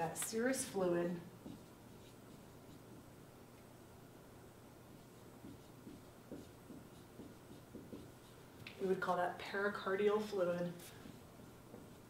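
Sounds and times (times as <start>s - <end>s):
marker writing on whiteboard: 1.4s - 3.1s, 4.8s - 8.9s, 10.4s - 12.0s.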